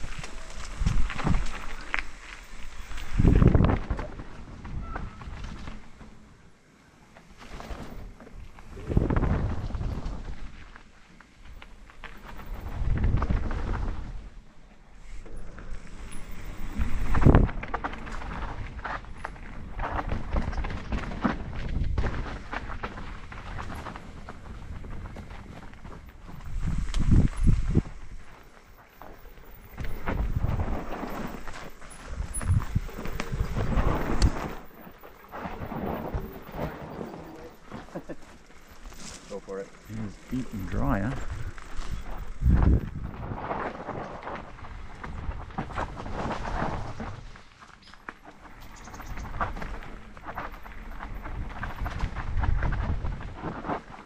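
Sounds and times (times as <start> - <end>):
bike tyres rolling over dirt: 0.0 - 54.0
wind on microphone: 2.6 - 5.7, 8.6 - 10.6, 12.5 - 14.3, 16.2 - 18.8, 23.7 - 28.3, 29.5 - 37.6, 39.9 - 47.3
bike knocks and rattles: 15.4 - 28.4.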